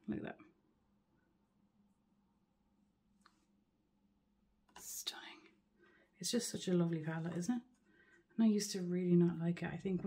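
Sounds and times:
woman whispering: 4.7s - 5.6s.

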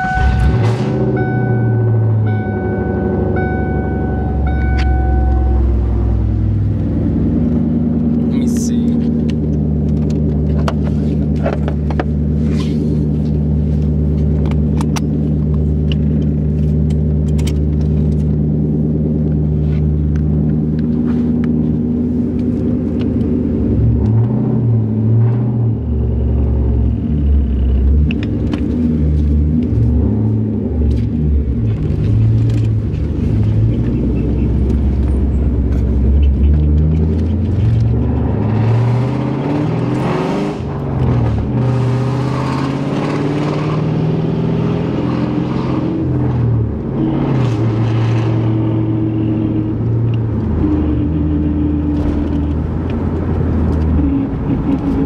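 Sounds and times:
car engine idling and accelerating: 0.0s - 55.0s.

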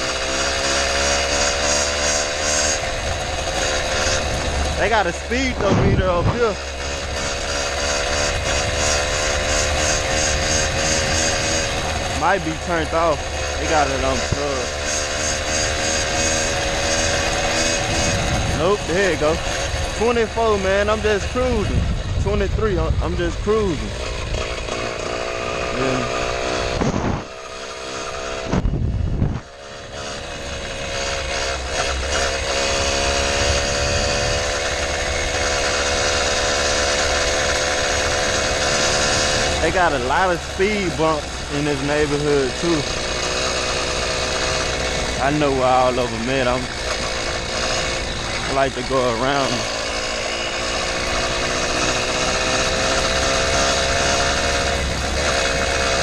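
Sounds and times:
two-stroke bicycle engine running: 0.0s - 56.0s
loud low rumble: 4.2s - 7.5s, 17.7s - 24.7s, 28.4s - 29.5s.

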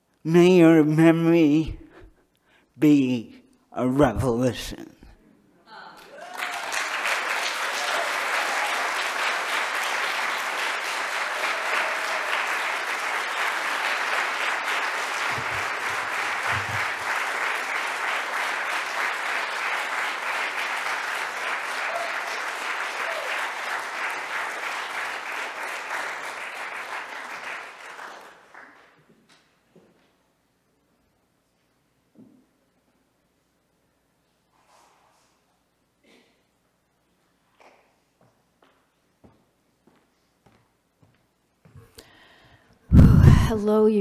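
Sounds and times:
audience applauding: 6.0s - 29.1s.

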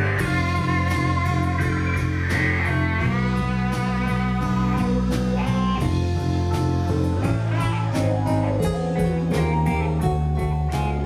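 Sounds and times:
bass line: 0.0s - 11.0s
drums with cymbal hits: 0.0s - 11.0s
electric guitar: 0.0s - 11.0s
keyboards: 0.0s - 11.0s.

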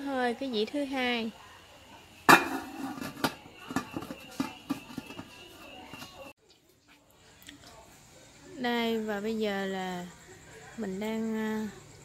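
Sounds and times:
metal lid clanking: 2.3s - 6.3s.

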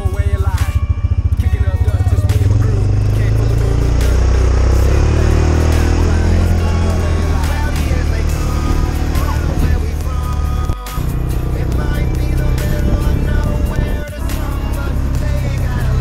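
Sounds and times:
music: 0.0s - 16.0s
off-road vehicle engine running: 0.0s - 16.0s.

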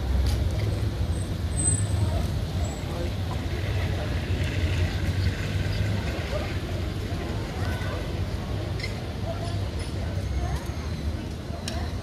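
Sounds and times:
faint voices of people: 0.0s - 12.0s.

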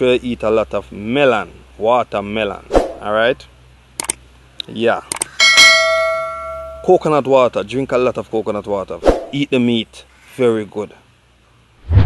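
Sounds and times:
bell notification chime: 5.4s - 6.9s.

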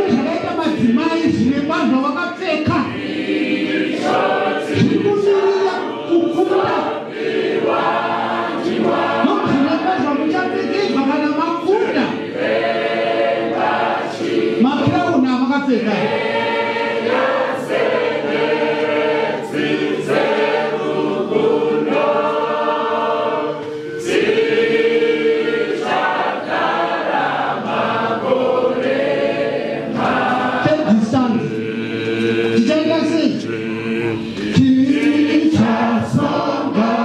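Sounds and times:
choir singing a hymn: 2.6s - 37.0s.

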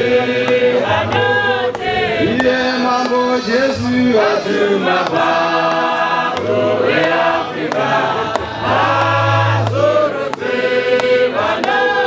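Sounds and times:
men singing a hymn in harmony: 0.0s - 12.0s.

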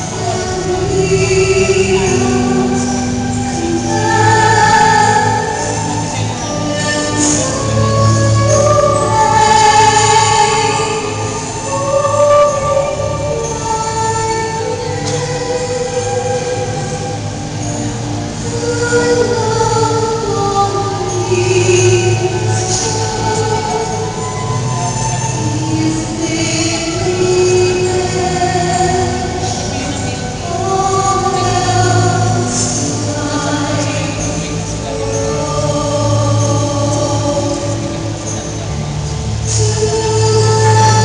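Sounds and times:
keyboard: 0.0s - 41.0s
violin: 0.0s - 41.0s
woman singing a hymn: 0.0s - 41.0s.

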